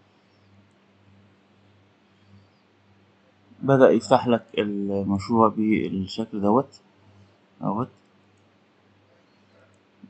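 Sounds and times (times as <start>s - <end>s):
low steady hum: 0.0s - 10.0s
person speaking syllable: 3.6s - 6.6s.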